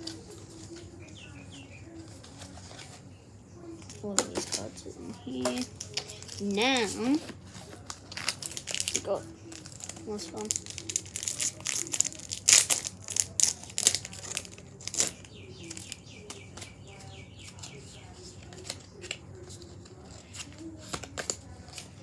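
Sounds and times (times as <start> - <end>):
foil pack crinkling: 3.9 - 16.8.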